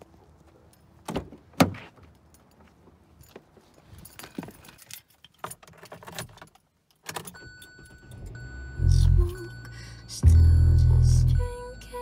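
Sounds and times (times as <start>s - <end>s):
deep bass swells: 10.2s - 11.5s.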